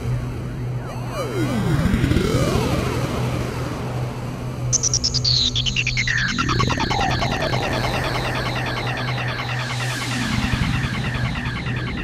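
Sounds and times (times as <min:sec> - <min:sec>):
low synth drone: 0:00.0 - 0:04.7, 0:06.5 - 0:12.0
pulsing high synth tone: 0:00.4 - 0:03.3, 0:04.8 - 0:12.0.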